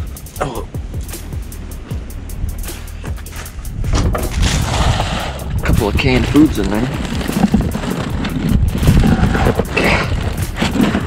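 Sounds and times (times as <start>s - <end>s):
background music: 0.0s - 11.0s
plastic bags rustling: 5.6s - 11.0s.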